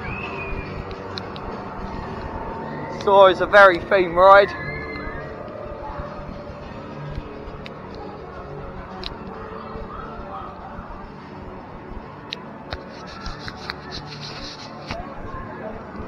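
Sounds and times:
distant voices: 0.0 - 16.0
faint music: 0.0 - 16.0.

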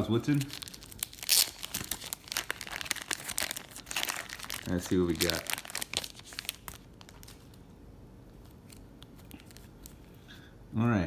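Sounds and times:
plastic wrap crinkling and tearing: 0.0 - 7.6, 8.4 - 10.1.

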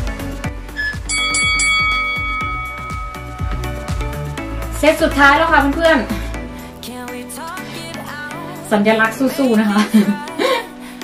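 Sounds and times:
pop music with steady beat: 0.0 - 11.0
timer bell chime: 0.8 - 5.3.

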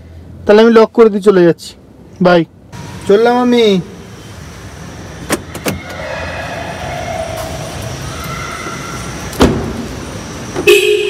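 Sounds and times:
steady background hum: 1.8 - 11.0
car door shutting thump: 9.4 - 9.9.

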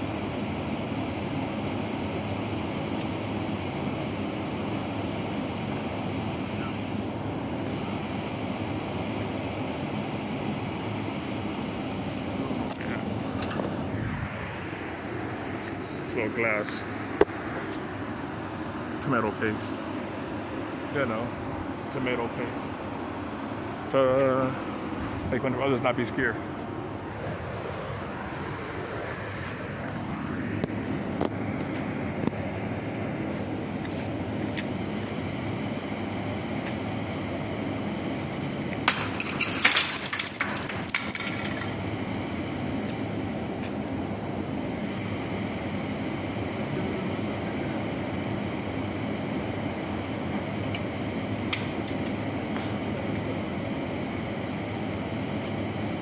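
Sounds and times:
low urban rumble: 0.0 - 56.0.

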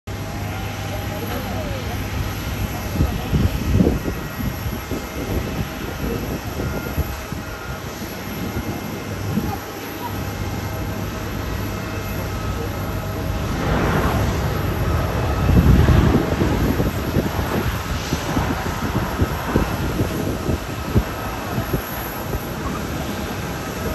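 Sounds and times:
distant jet engine rumble: 0.1 - 23.9
wind buffeting microphone: 0.1 - 23.9.

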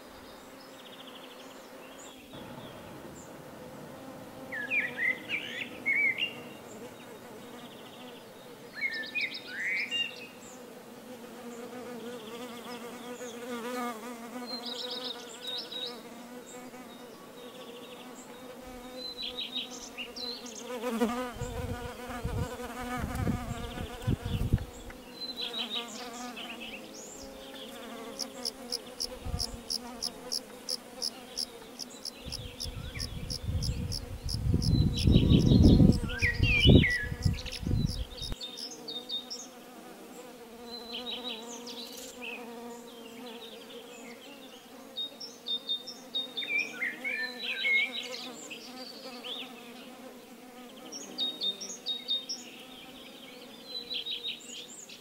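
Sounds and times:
bees buzzing: 0.0 - 9.4, 10.1 - 54.0
bird chirps: 31.3 - 39.4.

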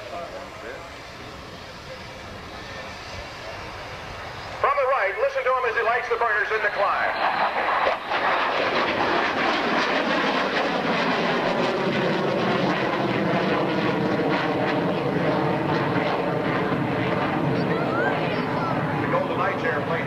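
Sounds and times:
jet engine roar: 0.0 - 20.0.

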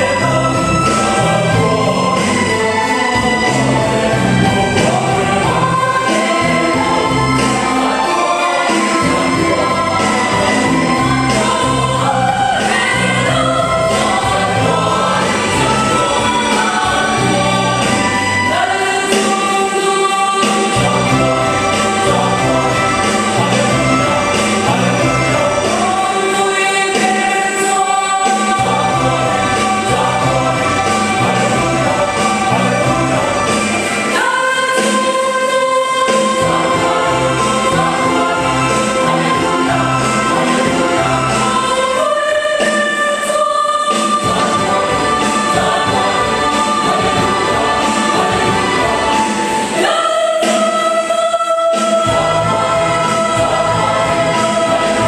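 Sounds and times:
church choir singing: 0.0 - 55.0.

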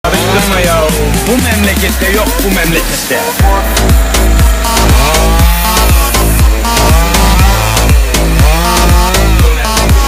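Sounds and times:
electronic dance music: 0.0 - 10.0
chainsaw running: 0.1 - 10.0.

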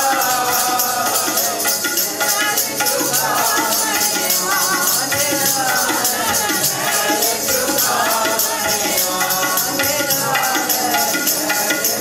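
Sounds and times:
people singing: 0.0 - 12.0
tabla rhythm: 0.0 - 12.0.

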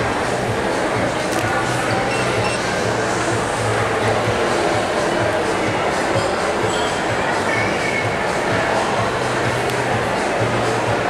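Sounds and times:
background music: 0.0 - 11.0
crowd chatter: 0.0 - 11.0.

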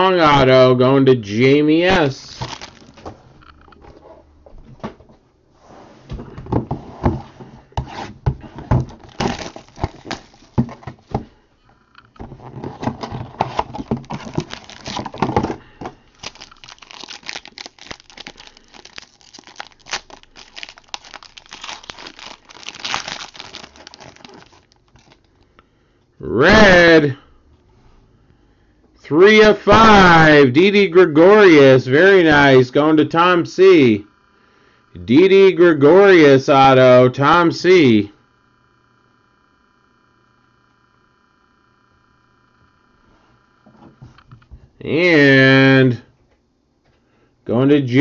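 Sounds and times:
foil wrapper crinkling and tearing: 2.2 - 3.0, 9.0 - 10.8, 13.5 - 25.3
packaging and cards clicking: 2.4 - 3.1, 9.0 - 11.0, 12.9 - 25.4.

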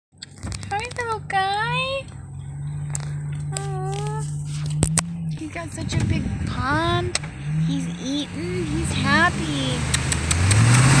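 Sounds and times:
vehicle engine idling: 0.2 - 11.0
high-pitched voice calling out: 3.5 - 4.4.

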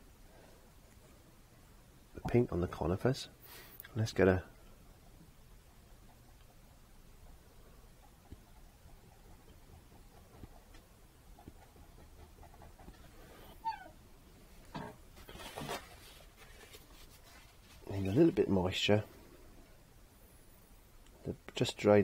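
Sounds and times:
brush dabbing paint on canvas: 5.0 - 13.4, 15.2 - 18.3
paper towel rustling: 15.1 - 18.4.

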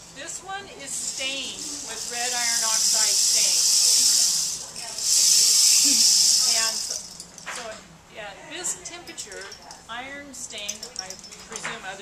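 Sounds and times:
rainstick rushing hiss: 0.9 - 7.2.

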